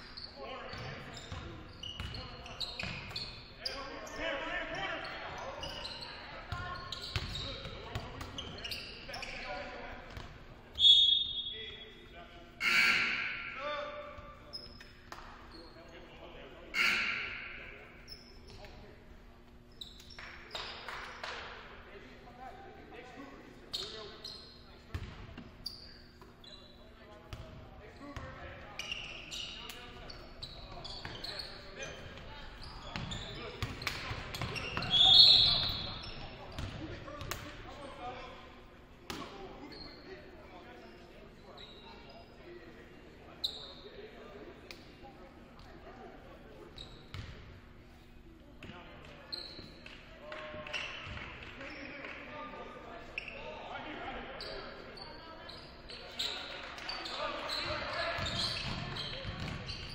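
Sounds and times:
sneaker squeaks: 0.0 - 21.4, 23.7 - 38.3, 39.1 - 42.6, 43.3 - 44.0, 45.5 - 52.0, 53.0 - 59.9
voices of players and spectators: 0.0 - 59.9
referee's whistle blast: 12.6 - 13.6, 16.7 - 17.6, 34.9 - 35.8.

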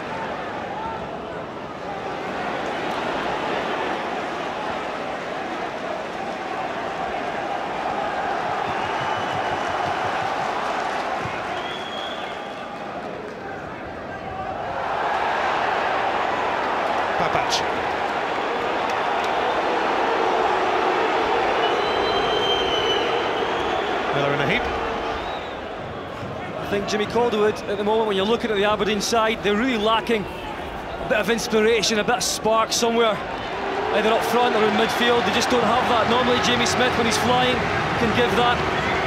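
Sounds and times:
stadium crowd shouting and chanting: 0.0 - 39.0.

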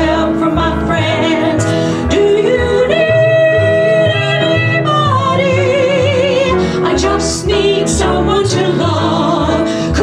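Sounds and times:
piano accompaniment: 0.0 - 10.0
women singing: 0.0 - 10.0.

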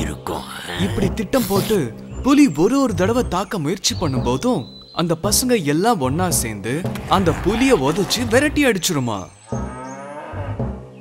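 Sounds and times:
cow mooing: 9.6 - 10.6.

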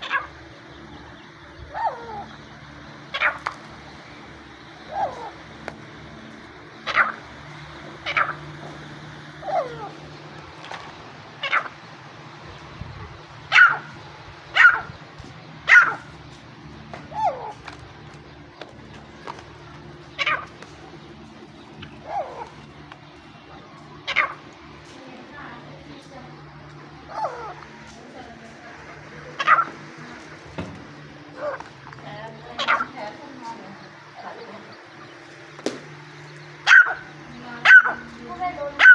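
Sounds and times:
partridge calling: 0.0 - 38.9
steady low hum: 0.0 - 38.9.

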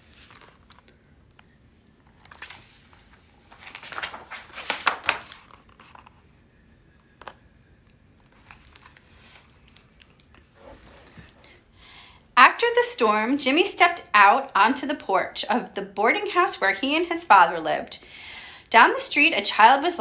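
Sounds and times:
book pages rustling: 0.0 - 1.0, 1.8 - 6.2, 8.2 - 11.6.

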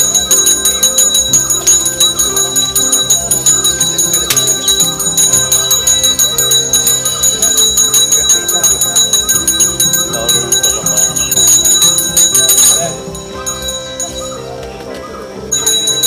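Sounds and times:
small brass hand bell ringing: 0.0 - 14.5, 15.5 - 16.0
voices: 0.0 - 16.0.

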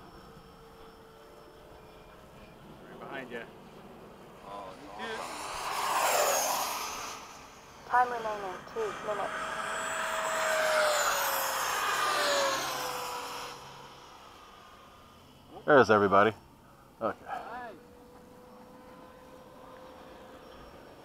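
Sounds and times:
model jets whining past: 0.0 - 21.0.

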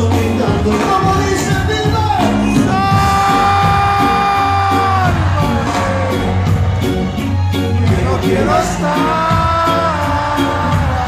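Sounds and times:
live reggae band: 0.0 - 11.0.

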